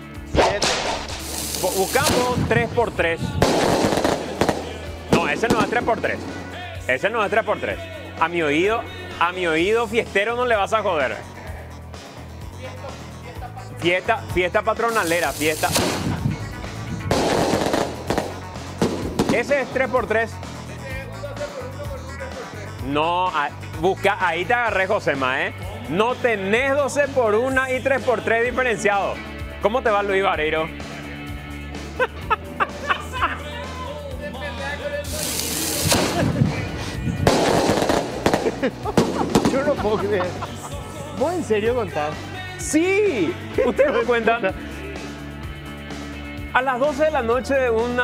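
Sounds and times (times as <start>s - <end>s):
background music: 0.0s - 48.0s
firework bangs: 0.3s - 6.8s, 14.9s - 19.8s, 35.1s - 40.4s
firework crackling: 0.4s - 7.0s, 14.8s - 19.8s, 35.0s - 40.7s.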